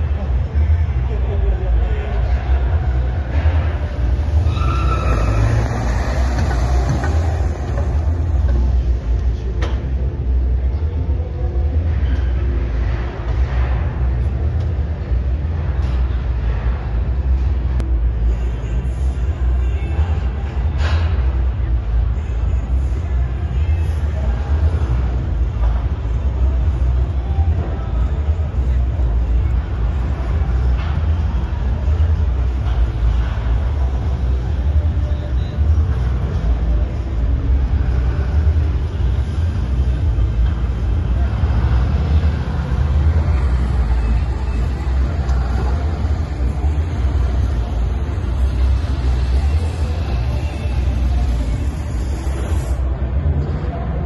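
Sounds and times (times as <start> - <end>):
background chatter: 0.0 - 54.0
low rumble of exhibition hall: 0.0 - 54.0
pickup truck moving over ramp: 3.2 - 10.0.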